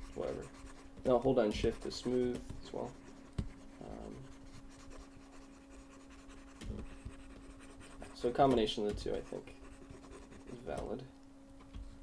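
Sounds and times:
stylus scratching on tablet: 0:00.0 - 0:11.0
low electrical hum: 0:00.0 - 0:12.0.

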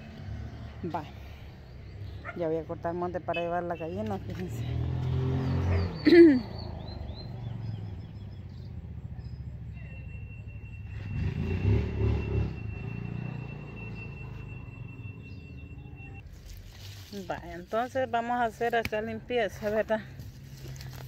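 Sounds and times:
passing vehicle engine rumble: 0:00.0 - 0:21.0.

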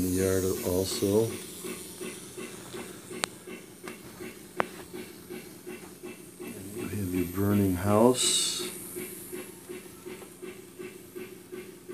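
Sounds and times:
pulsing steam hiss: 0:00.0 - 0:11.9.

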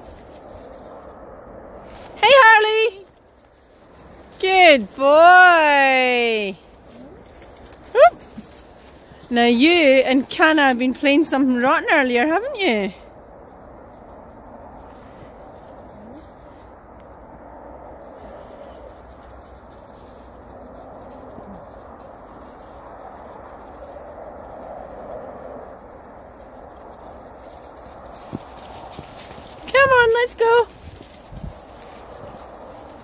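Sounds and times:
footsteps crunching through snow: 0:27.6 - 0:33.0.

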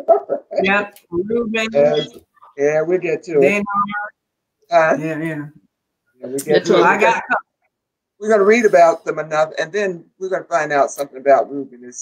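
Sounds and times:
spoken syllables: 0:00.0 - 0:04.1, 0:04.7 - 0:05.5, 0:06.2 - 0:07.4, 0:08.2 - 0:12.0.

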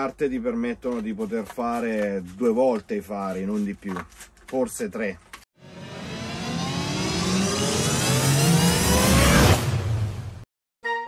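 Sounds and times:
rising riser sound effect: 0:05.6 - 0:10.5.

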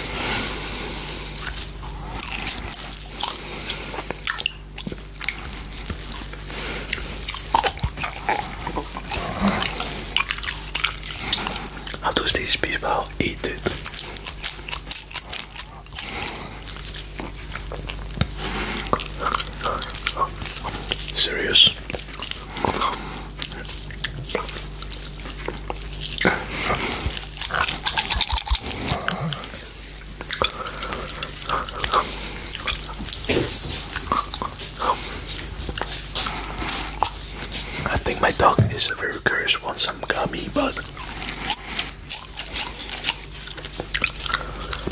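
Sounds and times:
chewing and licking candy: 0:00.0 - 0:44.9
faint low hum: 0:00.0 - 0:44.9.

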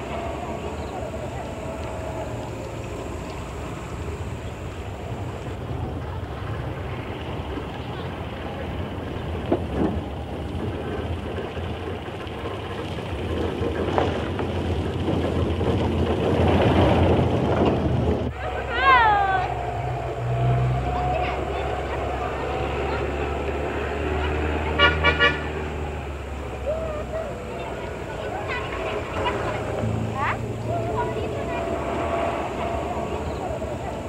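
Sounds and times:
car driving: 0:00.0 - 0:34.0
car horn: 0:24.6 - 0:25.8.

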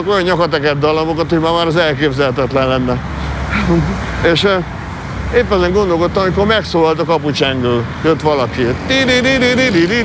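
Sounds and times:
man speaking: 0:00.0 - 0:10.0
road traffic rumble: 0:00.0 - 0:10.0.

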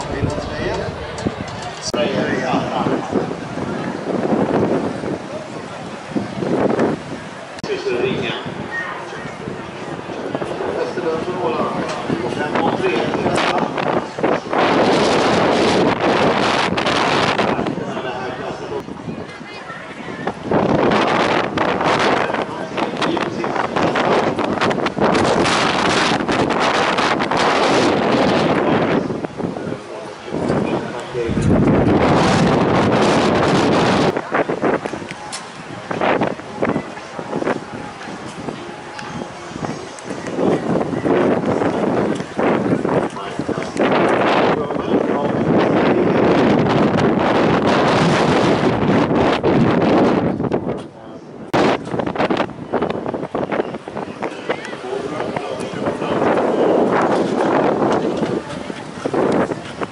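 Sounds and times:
spectators' voices: 0:00.0 - 0:59.9
wind buffeting microphone: 0:00.0 - 0:59.9.

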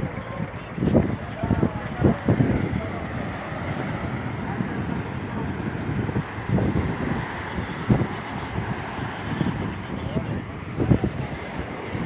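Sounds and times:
surf breaking on a beach: 0:00.0 - 0:12.0
wind buffeting microphone: 0:00.0 - 0:12.0.

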